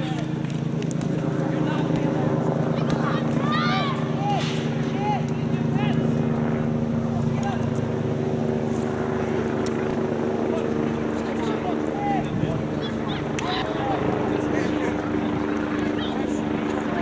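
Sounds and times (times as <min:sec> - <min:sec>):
low engine drone: 0:00.0 - 0:17.0.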